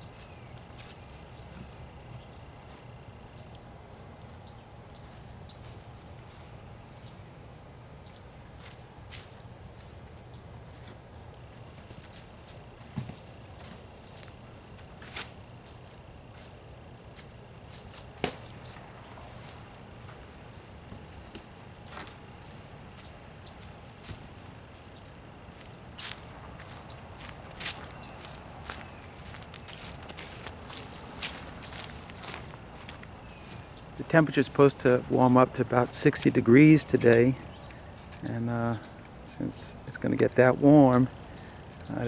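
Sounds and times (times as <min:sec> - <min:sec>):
footsteps on grass and leaves: 0:00.0 - 0:37.4.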